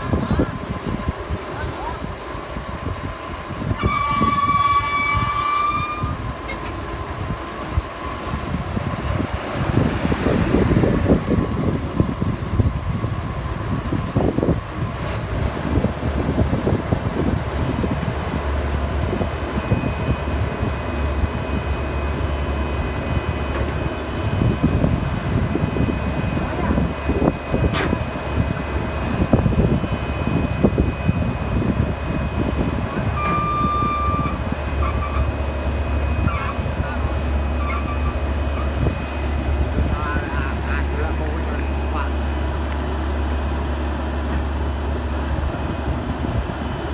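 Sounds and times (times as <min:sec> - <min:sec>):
diesel engine running: 0:00.0 - 0:46.9
short beep: 0:33.1 - 0:35.3.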